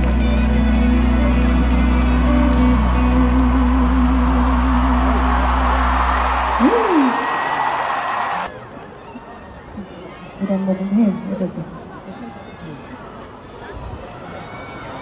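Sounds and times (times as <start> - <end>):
live band playing: 0.0 - 6.0
steady bass: 0.0 - 6.8
crowd cheering and applause: 0.0 - 9.0.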